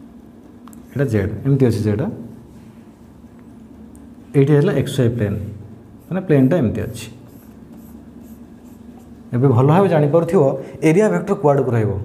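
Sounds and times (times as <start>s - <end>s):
marker stroking on whiteboard: 5.9s - 9.3s.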